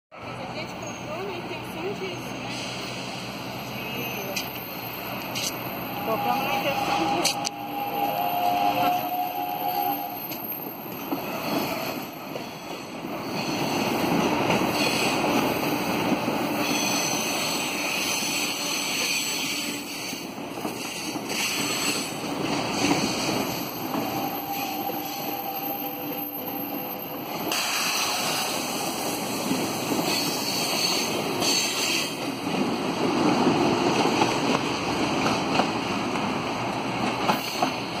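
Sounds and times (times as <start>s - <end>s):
train wheels rumbling on rail: 0.2s - 38.0s.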